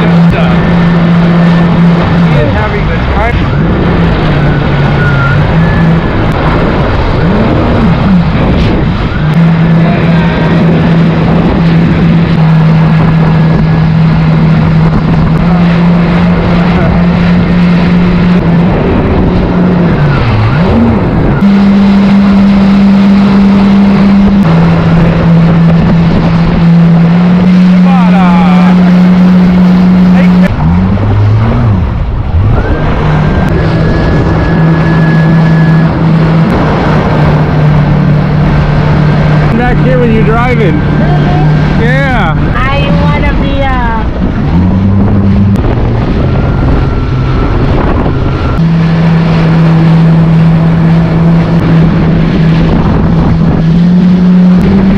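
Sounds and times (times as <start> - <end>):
jet ski engine running: 0.0 - 54.9
rush of wind: 0.0 - 54.9.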